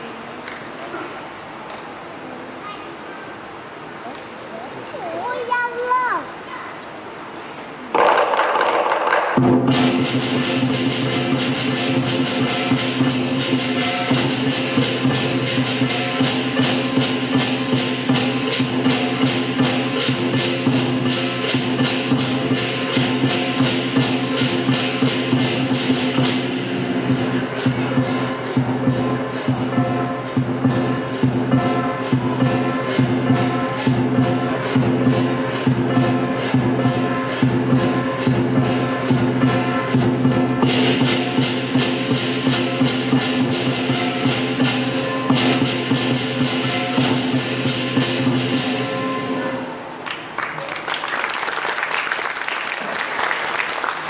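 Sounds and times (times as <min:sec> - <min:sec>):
drum and gong percussion band: 0:07.7 - 0:51.2
cymbal crashes: 0:09.4 - 0:50.0.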